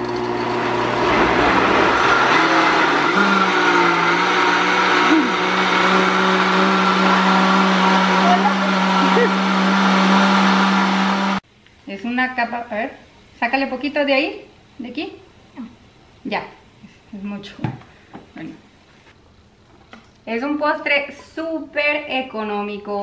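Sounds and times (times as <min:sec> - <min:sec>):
blender running: 0:00.0 - 0:11.4.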